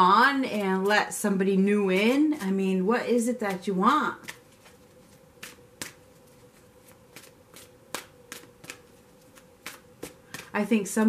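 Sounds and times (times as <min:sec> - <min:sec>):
faint steady hum: 0:00.0 - 0:11.0
cards clicking and tapping: 0:03.4 - 0:11.0.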